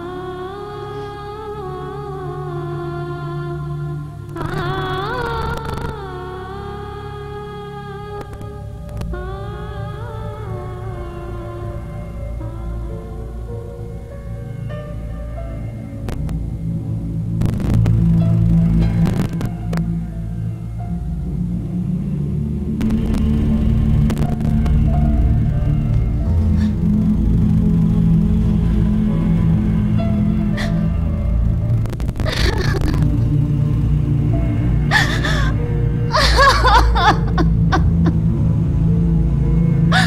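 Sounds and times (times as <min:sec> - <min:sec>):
loud low hum: 0:00.0 - 0:40.0
low drone: 0:00.0 - 0:40.0
wordless vocal melody: 0:00.0 - 0:40.0.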